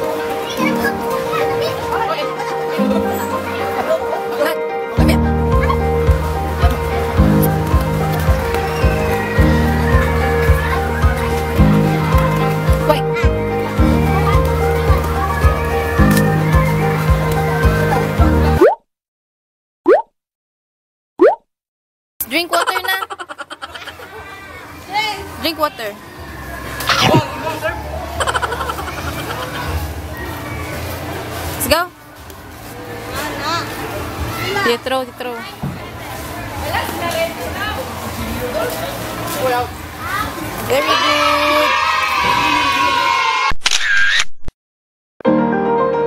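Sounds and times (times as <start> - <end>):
background music: 0.0 - 18.6, 45.2 - 46.0
voices talking: 0.0 - 18.6, 22.2 - 32.0
water drop plop sound effect: 18.6 - 18.8, 19.9 - 20.1, 21.2 - 21.4.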